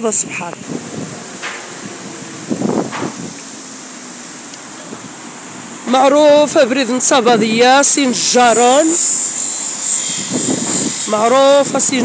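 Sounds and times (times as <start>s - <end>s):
traffic: 0.0s - 12.0s
wind: 0.0s - 12.0s.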